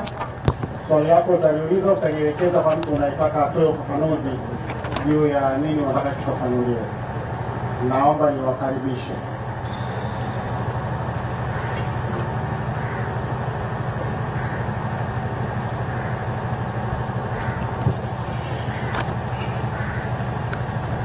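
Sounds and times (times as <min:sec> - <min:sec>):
low constant hum: 0:00.0 - 0:21.0.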